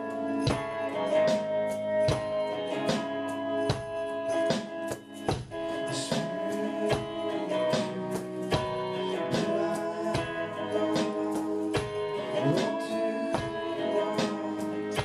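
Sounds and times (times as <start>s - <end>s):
held guitar chords: 0.0s - 15.0s
steady drum beat: 0.0s - 15.0s.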